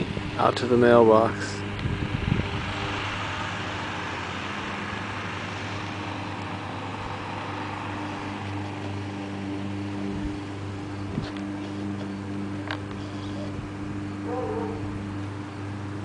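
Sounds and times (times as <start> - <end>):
passing car noise: 0.0 - 16.0
steady low engine hum: 0.0 - 16.0.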